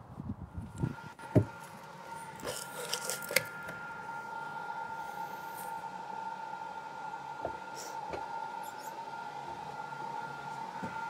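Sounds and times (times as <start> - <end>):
high-pitched equipment hum: 0.0 - 11.0.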